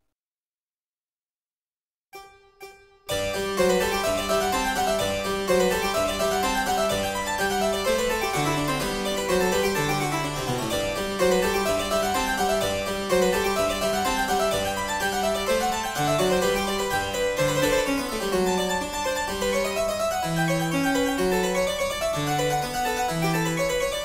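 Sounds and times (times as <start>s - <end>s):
harpsichord baroque accompaniment: 2.2s - 24.0s.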